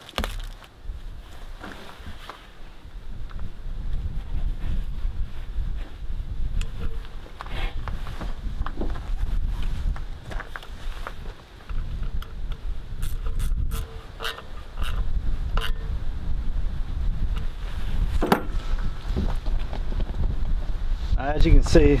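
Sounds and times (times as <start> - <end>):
wind buffeting microphone: 0.8 - 22.0.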